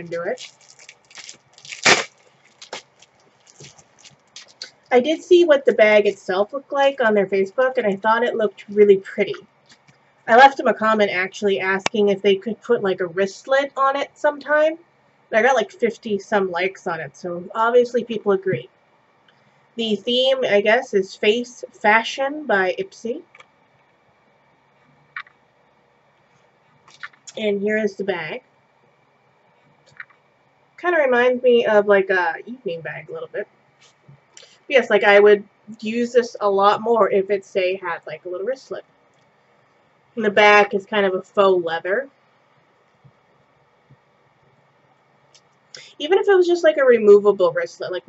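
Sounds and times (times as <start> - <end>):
packaging crinkling: 0.2 - 4.8.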